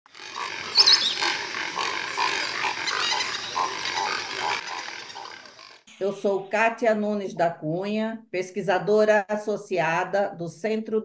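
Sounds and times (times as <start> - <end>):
short animal calls: 0.1 - 5.8
chorus of wild animal calls: 0.1 - 5.9
high-pitched hum of calls: 0.1 - 6.7
high chirp: 0.7 - 1.5.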